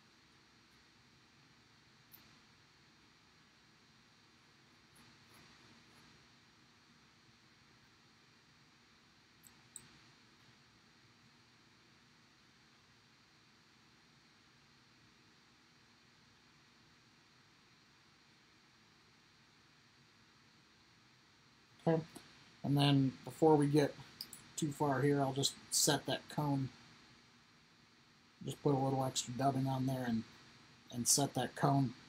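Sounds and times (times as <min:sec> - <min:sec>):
faint room hiss: 0:00.0 - 0:32.0
small clicks: 0:09.4 - 0:10.0.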